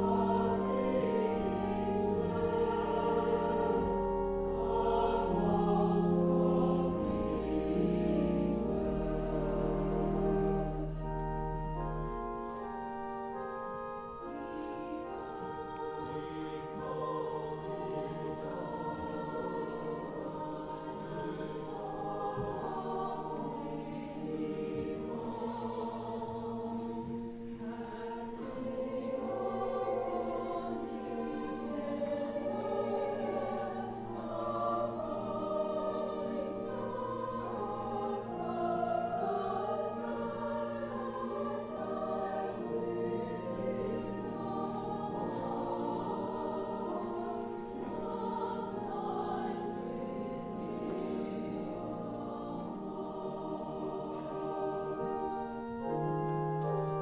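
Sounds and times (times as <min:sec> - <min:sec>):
mixed choir singing: 0:00.0 - 0:11.8, 0:14.2 - 0:57.0.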